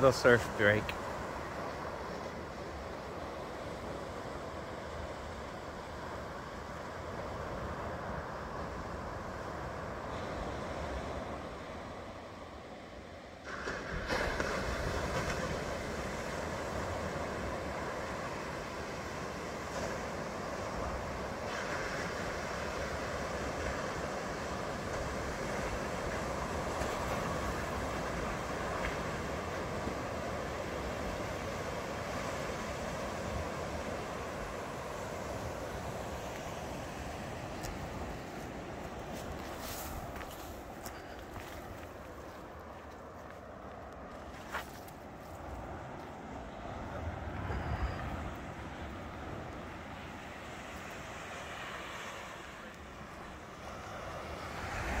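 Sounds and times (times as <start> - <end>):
ocean surf breaking: 0.0 - 55.0.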